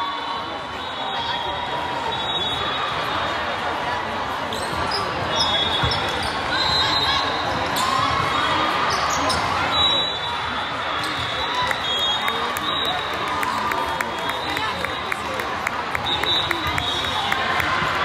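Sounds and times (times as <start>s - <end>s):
shoe squeaks: 4.5s - 7.2s.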